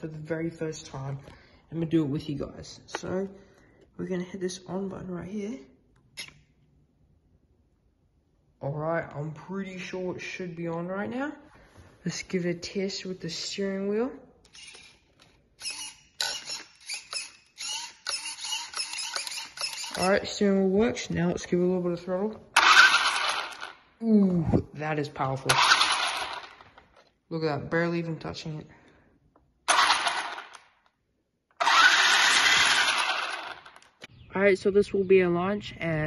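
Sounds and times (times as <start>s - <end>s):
steering servo whirring: 15.6s - 20.0s, 31.6s - 34.0s
electric motor spinning up: 15.6s - 20.1s, 22.6s - 23.8s, 25.5s - 26.6s, 29.7s - 30.6s, 31.6s - 34.0s.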